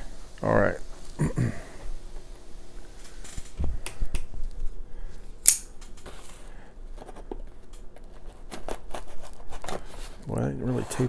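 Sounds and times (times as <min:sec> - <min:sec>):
knife cutting packing tape: 0:05.4 - 0:05.7
sharp snap: 0:05.4 - 0:05.8.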